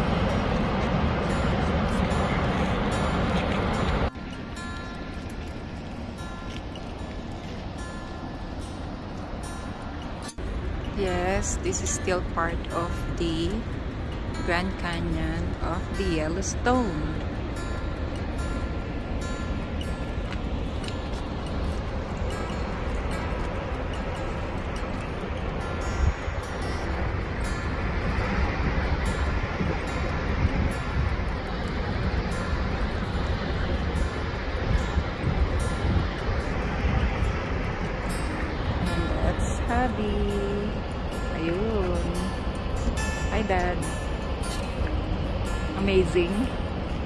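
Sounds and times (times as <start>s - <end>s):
waterfall rushing: 0.0s - 11.3s
wind on microphone: 0.0s - 47.0s.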